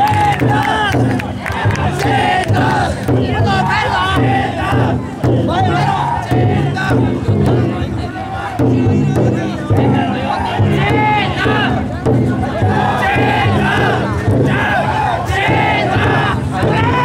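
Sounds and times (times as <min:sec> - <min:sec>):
crowd of men chanting: 0:00.0 - 0:17.0
drum beating steadily: 0:00.0 - 0:17.0.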